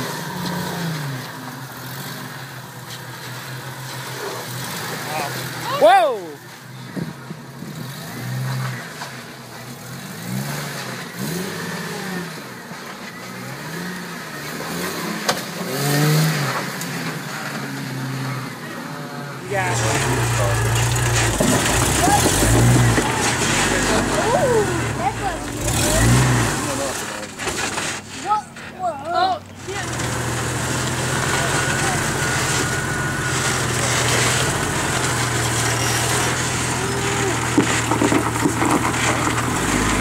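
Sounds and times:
off-road vehicle engine revving: 0.0s - 40.0s.

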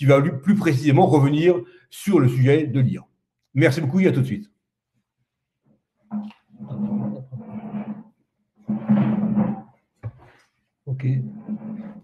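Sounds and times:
microphone rustling and handling: 8.9s - 10.7s.

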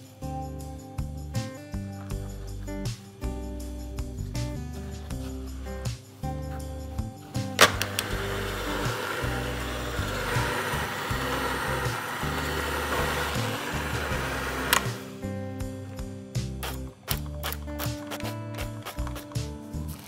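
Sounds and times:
background music: 0.0s - 20.0s
mixer switch click: 7.6s - 9.6s
electric hand mixer kneading dough: 7.6s - 15.2s.

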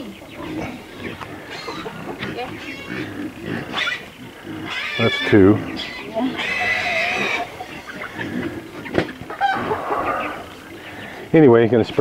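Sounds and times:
hens clucking: 0.0s - 12.0s.

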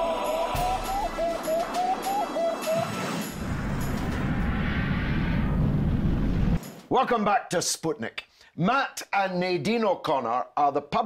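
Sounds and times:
rocket-like whoosh effect: 2.7s - 6.7s.

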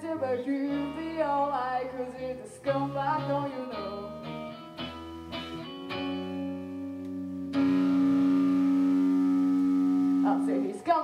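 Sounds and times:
electric guitar chord ringing: 2.7s - 11.0s.

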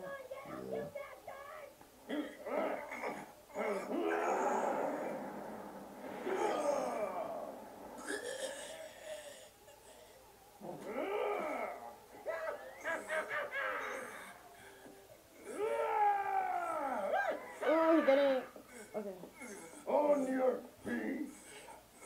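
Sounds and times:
voices groaning and straining: 2.1s - 22.0s.

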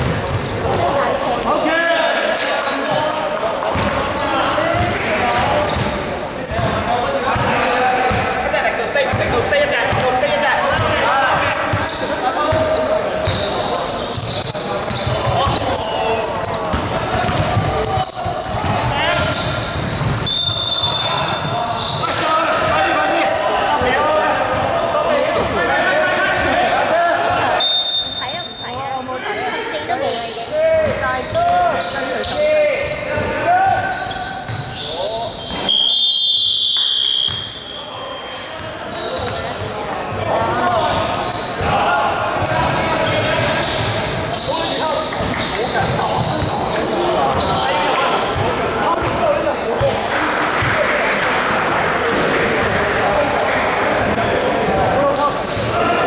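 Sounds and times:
players' voices: 0.0s - 56.0s
referee's whistle: 19.3s - 22.1s, 27.3s - 28.8s, 33.9s - 39.3s.

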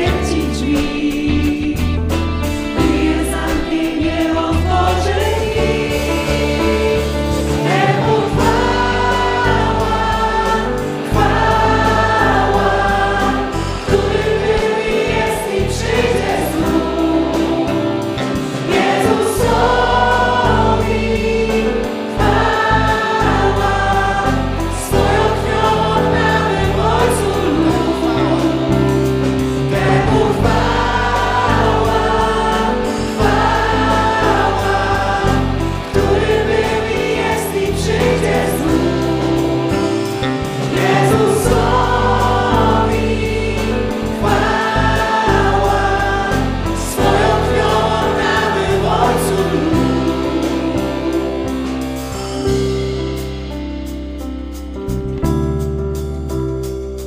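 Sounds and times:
group singing worship song: 0.0s - 53.0s
guitar: 0.0s - 57.0s
keyboard: 0.0s - 57.0s
low bass notes: 0.0s - 57.0s.

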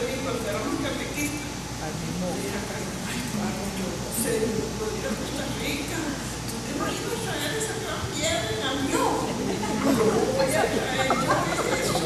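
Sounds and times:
indistinct chatter in a hall: 0.0s - 12.0s.

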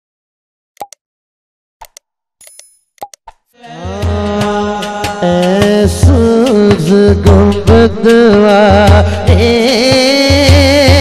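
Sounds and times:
mouse clicks: 0.8s - 1.0s, 1.8s - 3.4s
music: 3.6s - 11.0s.

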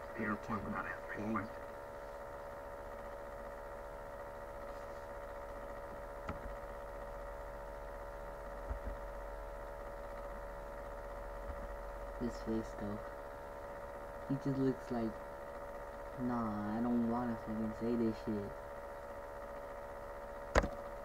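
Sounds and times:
steady electrical hum: 0.0s - 21.0s
sharp click: 20.5s - 20.8s.

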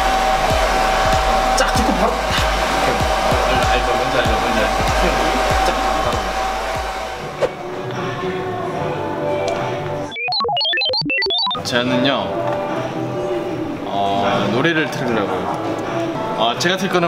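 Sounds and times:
hair dryer blowing: 0.0s - 7.7s
background music: 0.0s - 17.0s.

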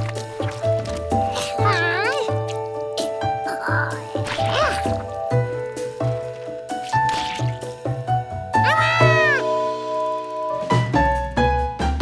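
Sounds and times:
light cartoon music: 0.0s - 12.0s.

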